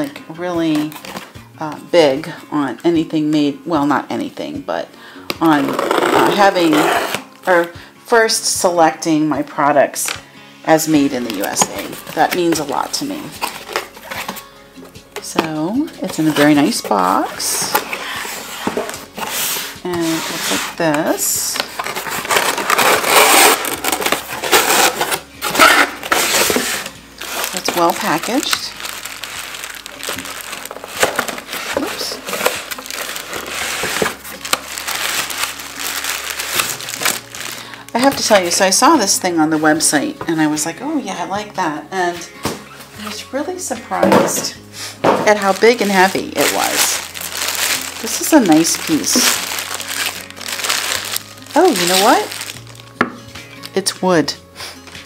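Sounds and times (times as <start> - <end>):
cardboard flaps scraping: 17.7 - 20.8, 21.6 - 37.6
plastic bag crinkling: 21.6 - 38.8, 45.2 - 53.0.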